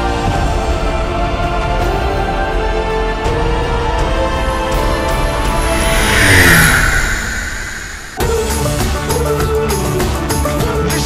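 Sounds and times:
propeller plane flying low past: 4.4 - 8.7.

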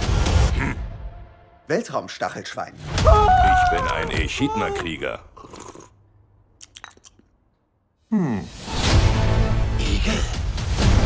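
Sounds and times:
person slurping coffee: 5.4 - 6.0, 6.6 - 7.3.

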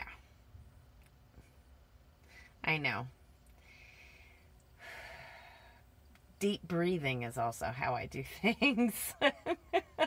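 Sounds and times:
woman breathing and sighing: 3.6 - 6.0.

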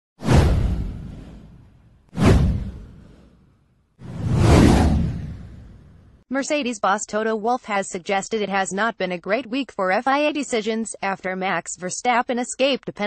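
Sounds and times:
whoosh sound effects: 0.2 - 3.4, 4.0 - 6.1.

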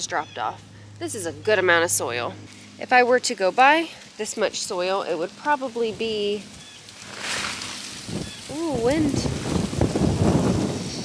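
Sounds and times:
wind buffeting microphone: 5.8 - 11.0.

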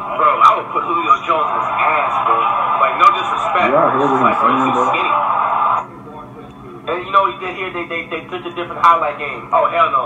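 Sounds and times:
speech from video playback: 3.0 - 5.2.

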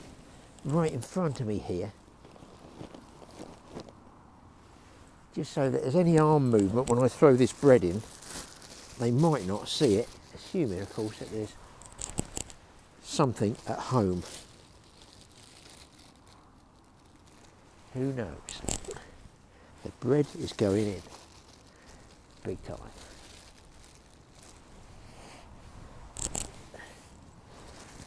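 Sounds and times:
handling knocks and rustles: 5.9 - 16.2, 17.2 - 19.2, 19.8 - 24.7
faint wind on microphone: 24.6 - 28.0.

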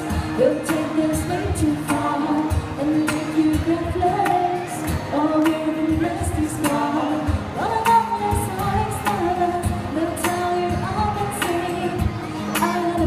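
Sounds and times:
strummed acoustic guitar: 0.0 - 13.0
woman singing into a microphone: 0.0 - 13.0.

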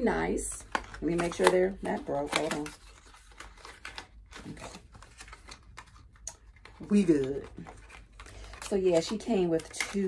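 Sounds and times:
paper sleeve crinkling: 0.6 - 10.0.

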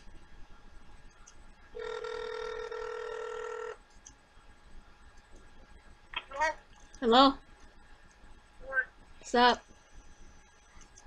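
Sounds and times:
telephone ringback tone: 1.8 - 3.8.

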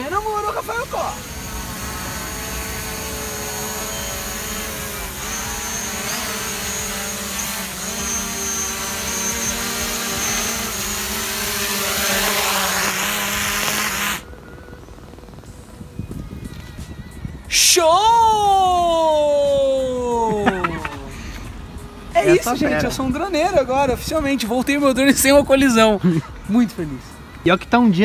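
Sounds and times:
drone propellers whining: 0.0 - 26.0.

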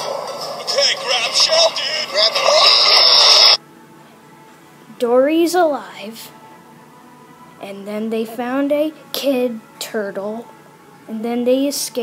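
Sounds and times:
film music from small speaker: 0.0 - 12.0.

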